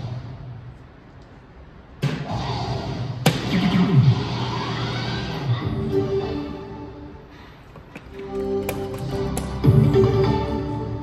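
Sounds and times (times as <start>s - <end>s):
music: 2.0s - 11.0s.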